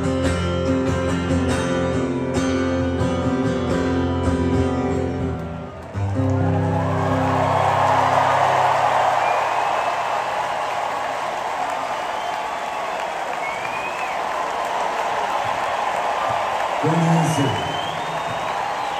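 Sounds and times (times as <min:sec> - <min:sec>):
stadium crowd applauding and cheering: 0:04.9 - 0:18.9
whistles sliding up: 0:11.9 - 0:14.2.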